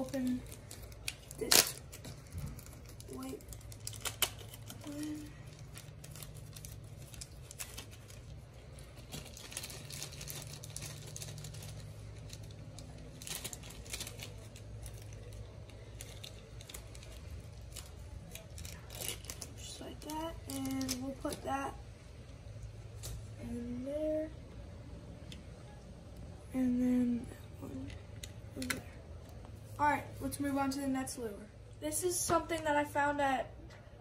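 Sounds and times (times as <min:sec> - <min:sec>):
plastic bag crinkling: 0:00.0 - 0:21.6.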